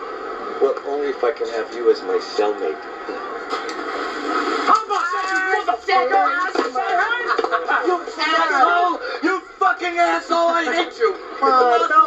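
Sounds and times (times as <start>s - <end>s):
men yelling excitedly: 4.7s - 12.0s
men laughing: 6.9s - 9.1s.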